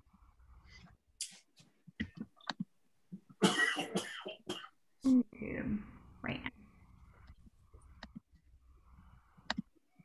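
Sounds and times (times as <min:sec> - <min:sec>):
person coughing: 0:03.4 - 0:04.8.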